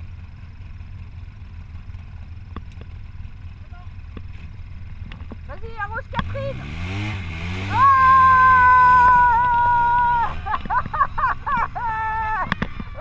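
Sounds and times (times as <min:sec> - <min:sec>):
vehicle engine revving: 0:04.1 - 0:13.0
long high-pitched yell: 0:07.7 - 0:10.4
excited cries: 0:07.7 - 0:13.0.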